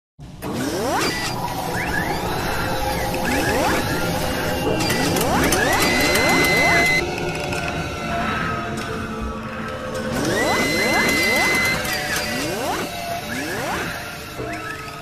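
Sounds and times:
mechanical clicks and clanks: 0.4s - 7.7s, 9.9s - 15.0s
high steady tone: 1.9s - 7.0s.

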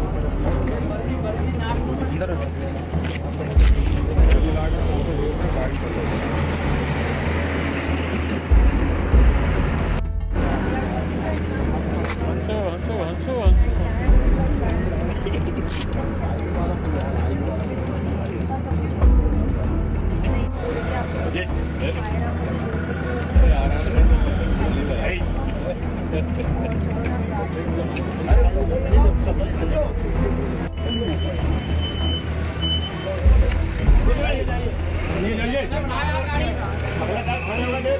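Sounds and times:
murmur of crowd voices: 0.0s - 37.9s
people talking indistinctly: 0.0s - 37.9s
steady low rumble: 3.5s - 12.4s, 13.5s - 22.5s
loud low rumble: 3.7s - 12.0s.

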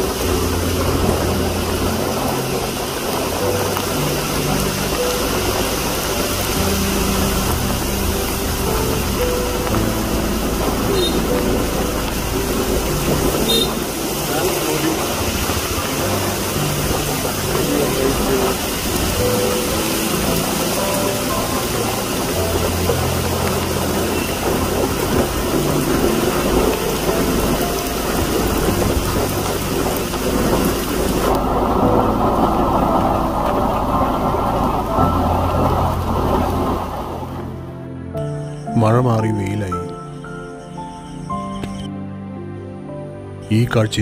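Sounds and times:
heavy rain hissing: 0.0s - 41.2s.

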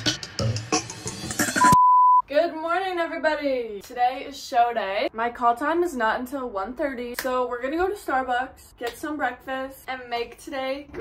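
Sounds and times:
background music: 0.0s - 1.8s
electronic beep tone: 1.6s - 2.2s
woman talking: 2.2s - 11.0s.

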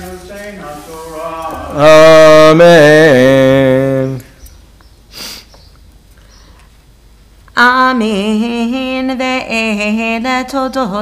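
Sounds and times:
sniff close to microphone: 5.1s - 5.6s.

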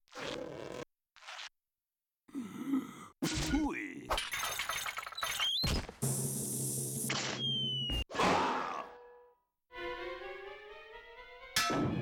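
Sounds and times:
music: 9.7s - 12.0s.

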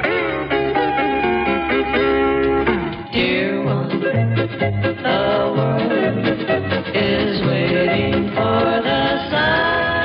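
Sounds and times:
country guitar music: 0.0s - 10.0s.

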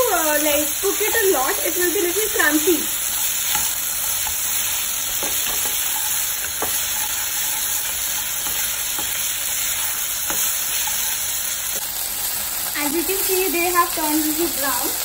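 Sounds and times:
vegetables sizzling in a pan: 0.0s - 15.0s
spatula scraping and tapping pan: 3.0s - 11.3s.

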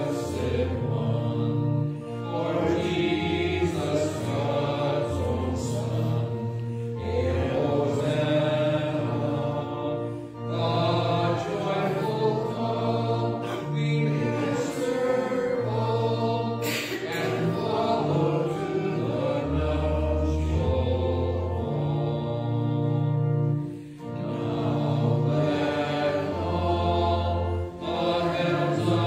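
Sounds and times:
congregation singing a hymn: 0.0s - 29.0s
organ accompaniment: 0.0s - 29.0s.

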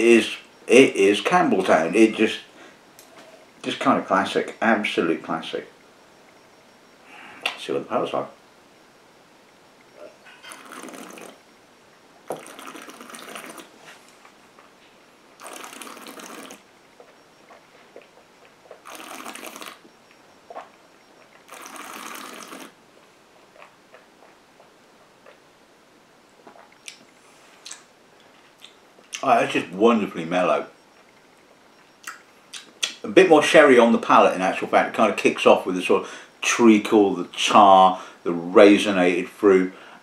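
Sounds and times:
faint mouth clicks: 27.6s - 29.2s.

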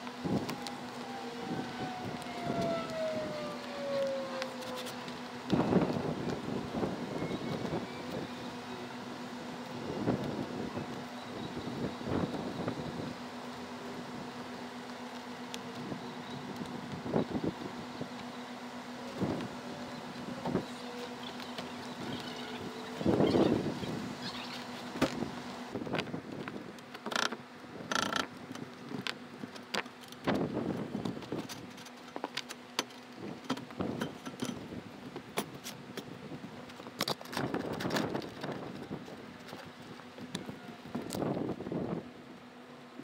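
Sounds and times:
whine falling in pitch: 0.0s - 25.4s
steady low hum: 0.0s - 43.0s.

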